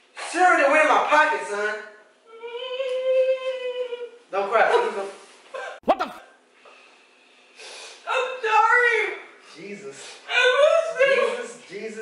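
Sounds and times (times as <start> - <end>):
breathy sniff: 6.6 - 8.0.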